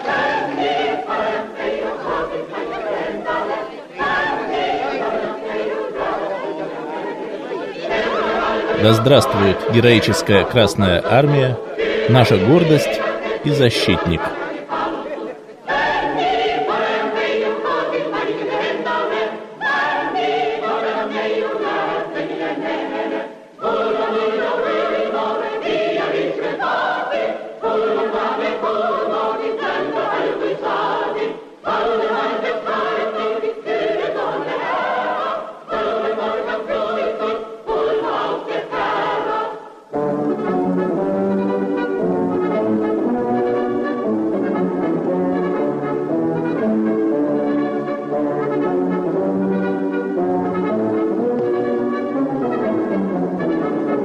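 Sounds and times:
choir singing: 0:00.0 - 0:54.0.

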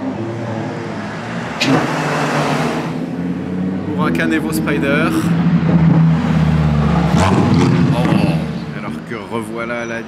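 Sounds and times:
sports car engine driving past: 0:00.0 - 0:09.1.

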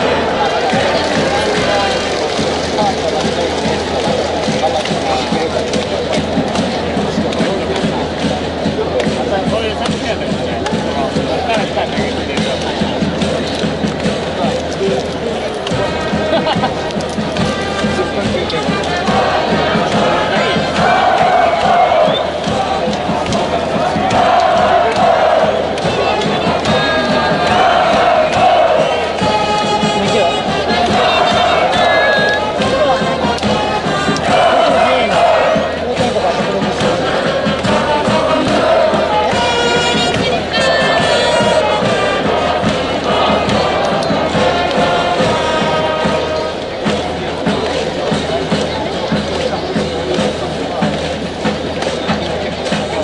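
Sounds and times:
brass band playing cheer song: 0:00.0 - 0:53.0
crowd chanting and shouting: 0:00.0 - 0:53.0.

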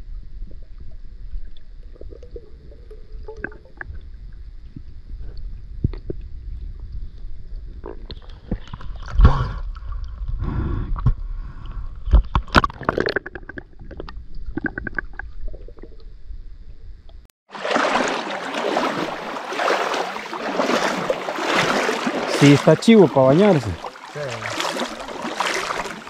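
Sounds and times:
muffled underwater rumble: 0:00.0 - 0:12.4
underwater clicks and gurgles: 0:00.0 - 0:26.0
river water rushing: 0:17.5 - 0:26.0.

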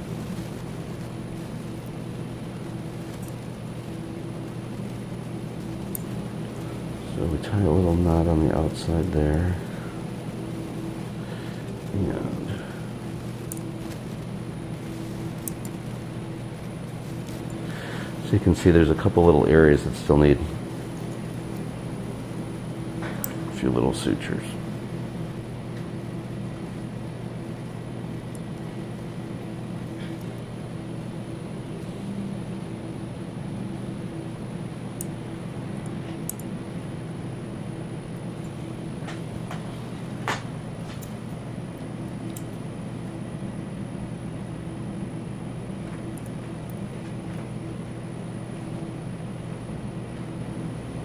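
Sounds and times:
low mechanical hum: 0:00.0 - 0:51.0.

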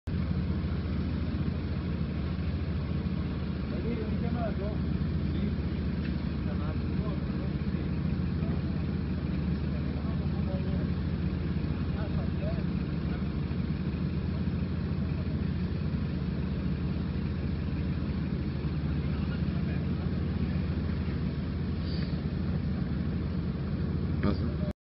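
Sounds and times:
car engine and road noise: 0:00.0 - 0:24.7
faint voices: 0:03.6 - 0:24.7.

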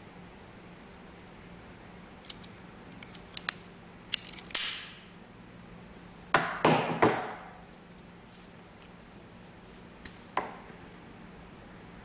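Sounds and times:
cable stripper blades snapping: 0:02.2 - 0:05.1.

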